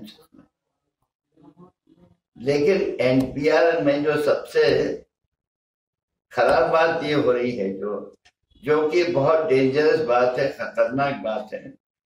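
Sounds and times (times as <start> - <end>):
man speaking: 2.4 - 5.1, 6.3 - 11.8.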